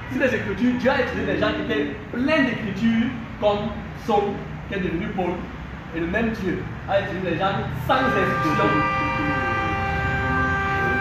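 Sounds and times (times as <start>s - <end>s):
horn long steady note: 7.9s - 11.0s.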